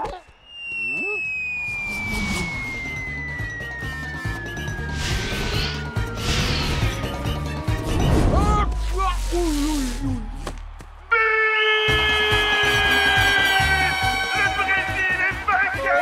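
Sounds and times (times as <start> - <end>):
falling whistling tone: 0.2 - 7.4
referee's whistle long blast: 0.4 - 4.6.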